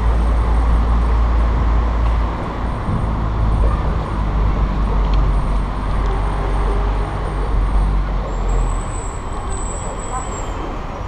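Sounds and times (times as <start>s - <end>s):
car driving slowly: 0.0s - 11.0s.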